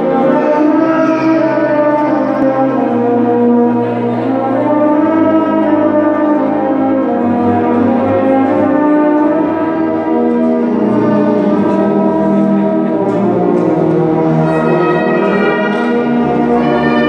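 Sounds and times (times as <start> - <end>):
brass band playing chords: 0.0 - 17.0.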